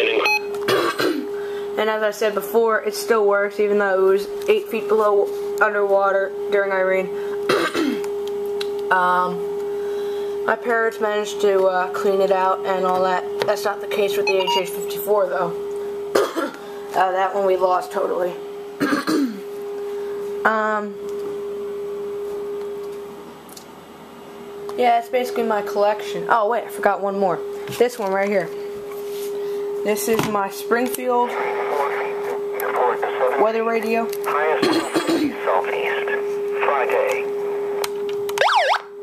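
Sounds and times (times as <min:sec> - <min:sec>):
radio hum-like tone: 0:00.0 - 0:00.5, 0:08.9 - 0:15.6, 0:19.8 - 0:22.6, 0:24.8 - 0:28.7, 0:29.6 - 0:39.0
steady electronic tone: 0:13.9 - 0:15.3, 0:38.4 - 0:39.0.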